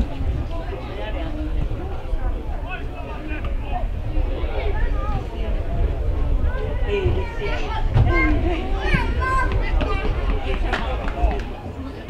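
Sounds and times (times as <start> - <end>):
steady low rumble: 0.0 - 12.0
footballers shouting: 0.1 - 12.0.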